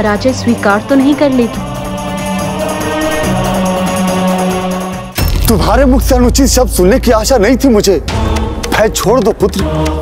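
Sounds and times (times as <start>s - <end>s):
choir-like voices: 0.2s - 5.2s, 8.0s - 10.0s.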